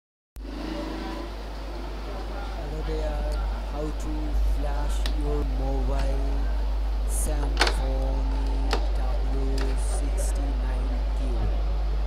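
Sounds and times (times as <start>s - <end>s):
steady low hum: 0.4s - 12.0s.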